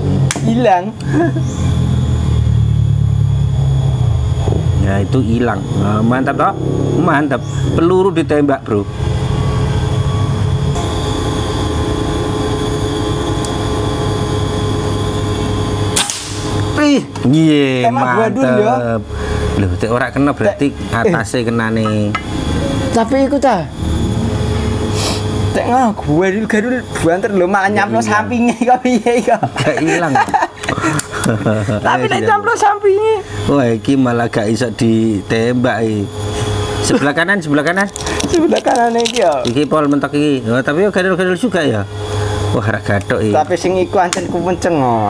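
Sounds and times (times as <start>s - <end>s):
men talking: 0.0s - 1.5s, 4.6s - 9.0s, 16.6s - 23.9s, 25.5s - 45.0s
steady mechanical drone: 0.0s - 45.0s.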